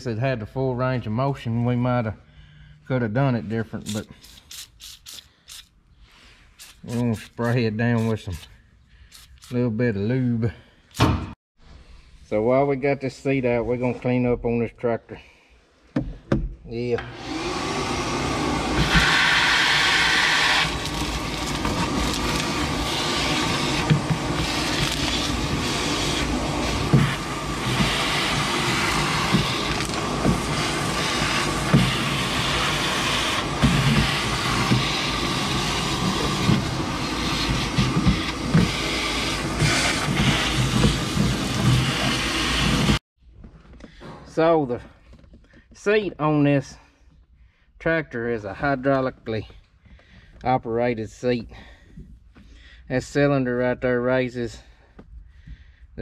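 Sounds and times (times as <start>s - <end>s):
vacuum cleaner running: 17.0s - 43.0s
debris rattling up hose: 18.8s - 38.8s.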